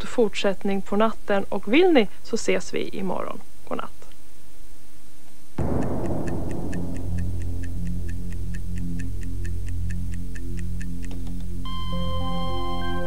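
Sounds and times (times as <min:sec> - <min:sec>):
sudden noisy hit: 0:05.6 - 0:09.7
clock-like ticking: 0:05.6 - 0:11.9
low synthesizer drone: 0:05.6 - 0:13.0.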